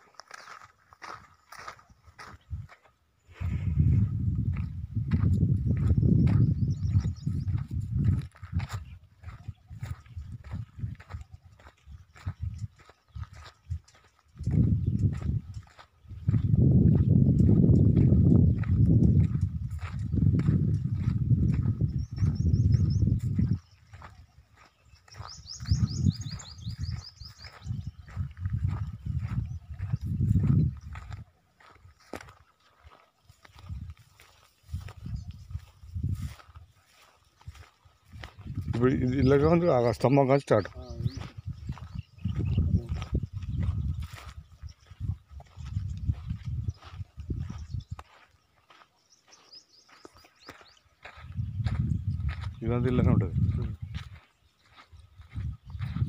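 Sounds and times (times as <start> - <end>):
footsteps crunching through dry grass: 0.0 - 56.0
wind buffeting microphone: 0.5 - 56.0.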